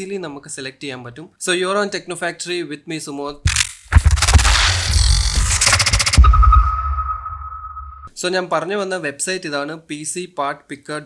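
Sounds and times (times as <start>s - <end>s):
low rumble: 3.5s - 8.1s
deep boom hit: 3.9s - 8.1s
sonar-like ping tone: 6.2s - 8.1s.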